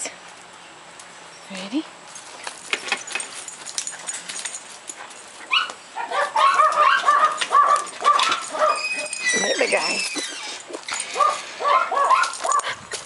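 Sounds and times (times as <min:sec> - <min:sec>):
small dog whining: 0:06.4 - 0:11.4.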